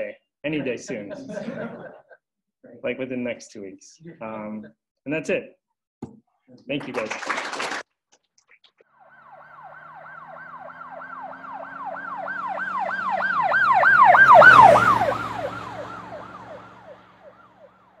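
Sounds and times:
emergency siren yelping: 0:08.9 - 0:18.0.

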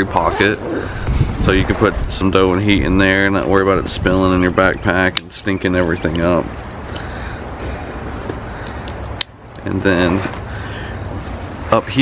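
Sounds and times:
wind rumble on microphone: 0:00.0 - 0:05.1.

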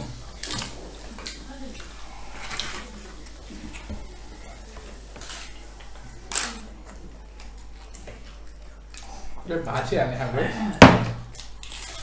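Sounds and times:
quiet meal clatter: 0:00.0 - 0:11.3.

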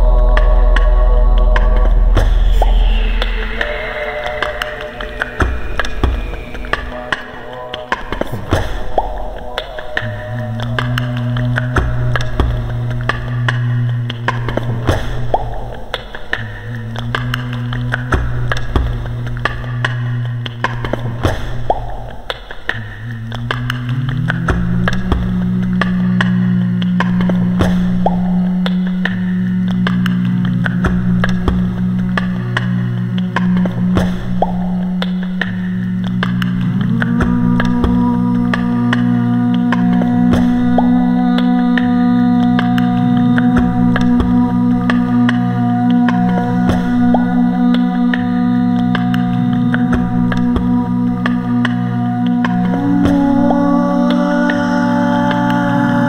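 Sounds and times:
beatboxed clicks and hits: 0:00.0 - 0:56.0
low sung vocal drones: 0:00.0 - 0:56.0.

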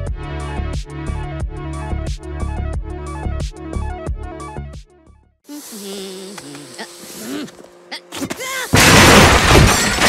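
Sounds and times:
loud crash with shattering: 0:08.7 - 0:10.0.

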